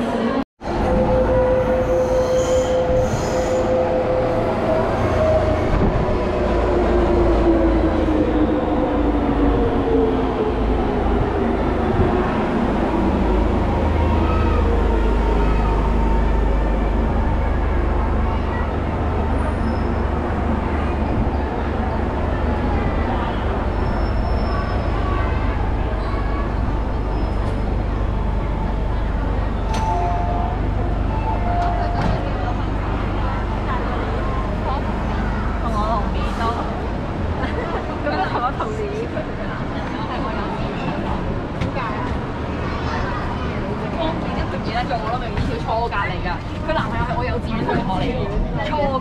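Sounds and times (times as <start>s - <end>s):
rumble of train wheels: 0.0s - 49.0s.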